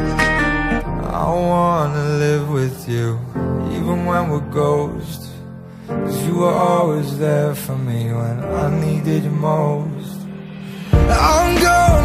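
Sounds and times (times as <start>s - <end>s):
man singing love song: 0.0s - 12.0s.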